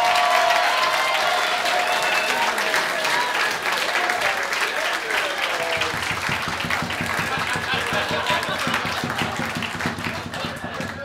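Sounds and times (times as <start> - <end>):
audience applauding: 0.0 - 11.0
crowd voices: 0.0 - 11.0.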